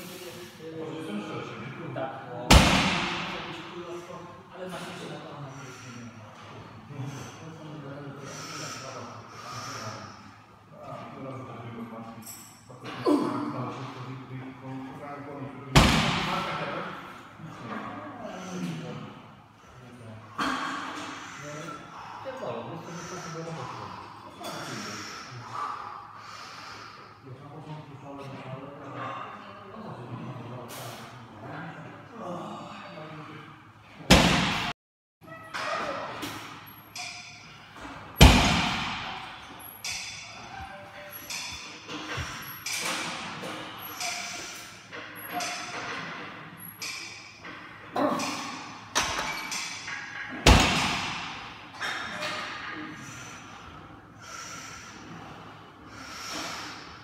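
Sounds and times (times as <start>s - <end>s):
man breathing heavily: 53.0s - 57.0s.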